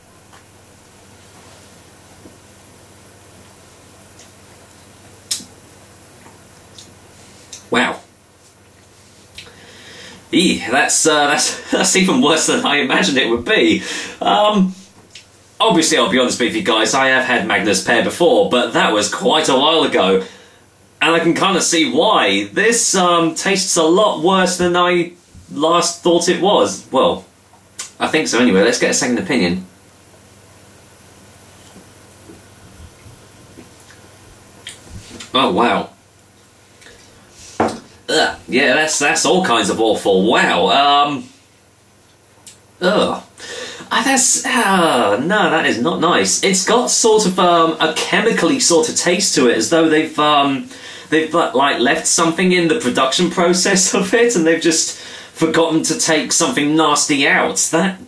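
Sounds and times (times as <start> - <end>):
faint hiss: 0.0 - 58.0.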